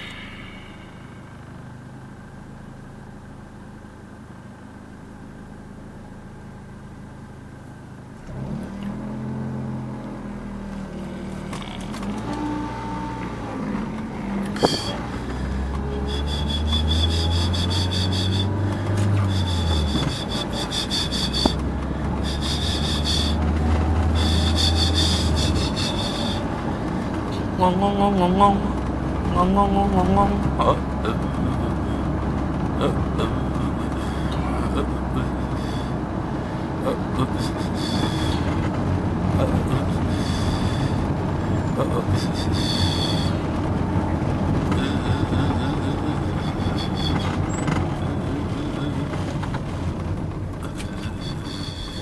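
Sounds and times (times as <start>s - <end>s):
car accelerating with road noise: 0.0s - 52.0s
car engine idling: 0.0s - 52.0s.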